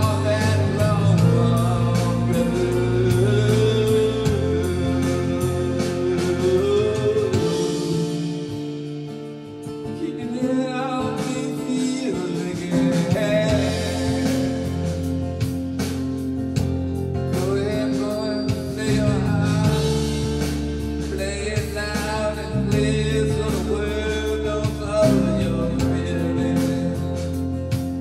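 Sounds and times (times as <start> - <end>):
harmonica playing blues: 0.0 - 8.9
guitar and bass backing: 0.0 - 28.0.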